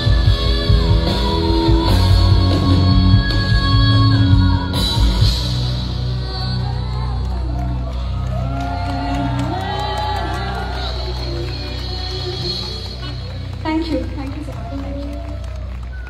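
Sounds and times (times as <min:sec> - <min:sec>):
live band playing amplified music: 0:00.0 - 0:16.0
audience whooping and cheering: 0:06.6 - 0:16.0.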